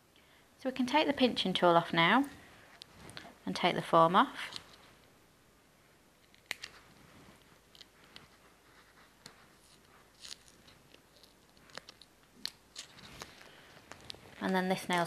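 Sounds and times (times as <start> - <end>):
clicks and crinkles of nail form: 4.4 - 4.9, 6.2 - 8.4, 9.0 - 14.7.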